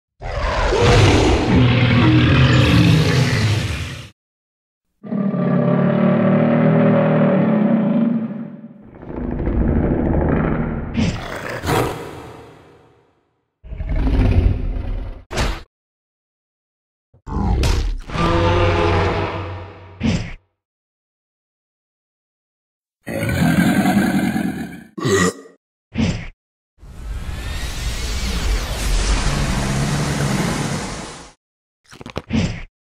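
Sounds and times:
low cartoon monster roar: 0:00.2 - 0:04.0, 0:05.0 - 0:12.4, 0:17.3 - 0:19.6, 0:23.1 - 0:25.5.

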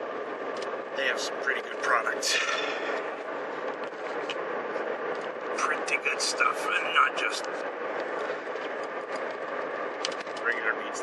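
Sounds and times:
road and engine noise in car: 0:00.0 - 0:11.0.

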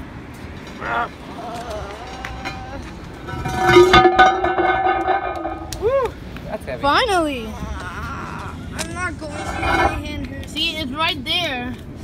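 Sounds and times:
heavy knocks: 0:03.3 - 0:05.8.

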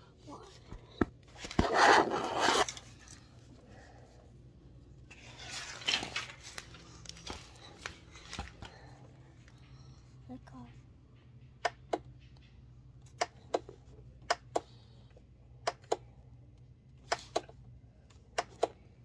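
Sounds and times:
rustling handling noise: 0:04.8 - 0:09.6.

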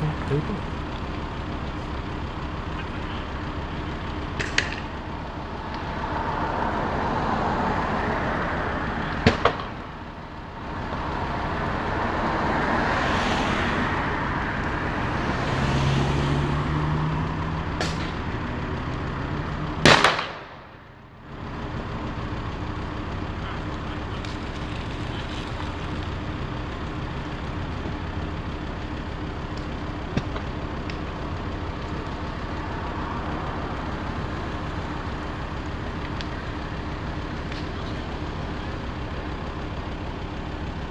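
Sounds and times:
road traffic: 0:00.0 - 0:40.9
sharp bangs: 0:09.2 - 0:09.9, 0:19.8 - 0:20.8.

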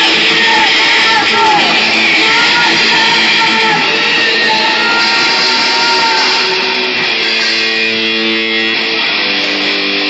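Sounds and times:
punk band playing live: 0:00.0 - 0:10.0.

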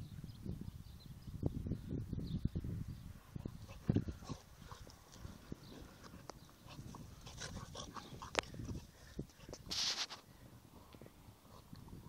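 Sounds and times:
dogs scuffling on grass: 0:03.8 - 0:10.2.

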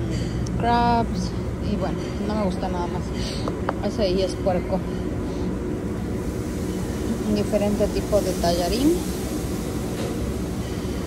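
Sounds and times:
low restaurant room rumble: 0:00.0 - 0:11.0.

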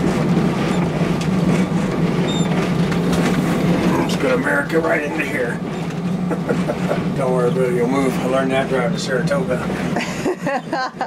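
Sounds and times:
bus engine humming: 0:00.0 - 0:11.0
short high squeak: 0:02.2 - 0:02.5.

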